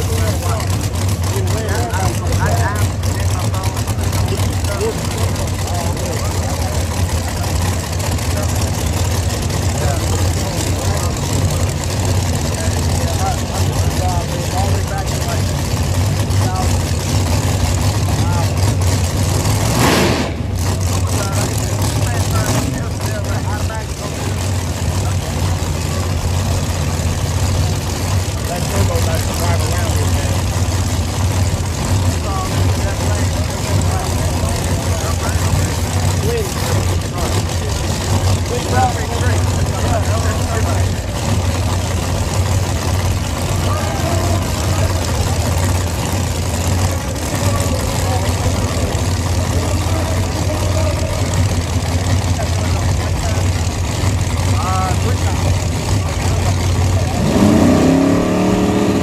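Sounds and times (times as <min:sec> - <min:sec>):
chatter of many voices: 0:00.0 - 0:59.0
engines idling: 0:00.0 - 0:59.0
short loud burst: 0:19.8 - 0:20.6.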